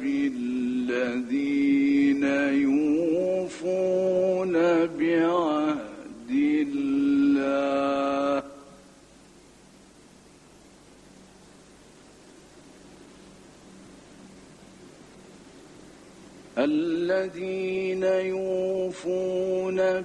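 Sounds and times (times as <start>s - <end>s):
faint recording hiss: 0.0s - 20.0s
man chanting into microphone: 16.6s - 20.0s.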